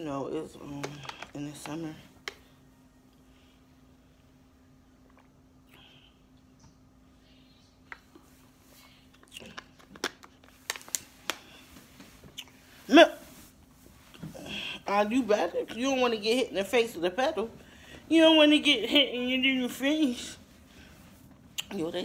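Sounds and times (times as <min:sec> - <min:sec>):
faint steady hum: 0:00.0 - 0:22.0
plastic bottle crinkling: 0:09.1 - 0:12.5.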